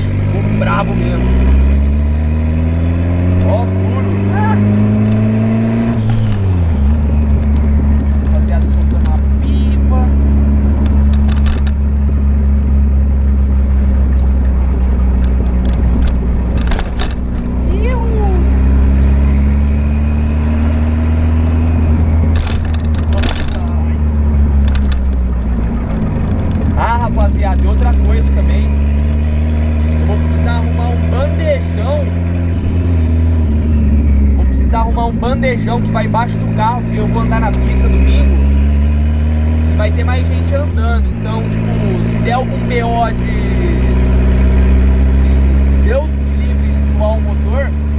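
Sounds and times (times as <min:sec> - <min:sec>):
car engine from inside cabin: 0:00.0 - 0:47.9.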